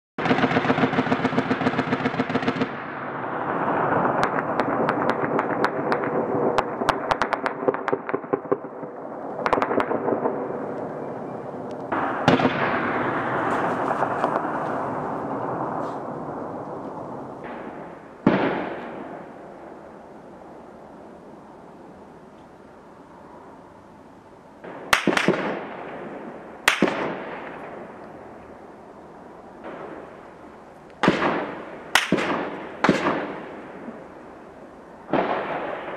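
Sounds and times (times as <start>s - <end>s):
blasts echoing across valley: 0.2s - 21.4s, 24.6s - 35.9s
heavy bang with long echo: 11.9s - 15.8s
automatic gunfire echoing: 24.6s - 27.9s, 31.0s - 33.8s.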